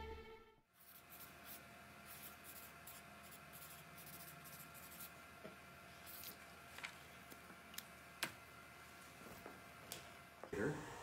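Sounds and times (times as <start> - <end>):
marker pen strokes on paper: 0.8 - 5.2.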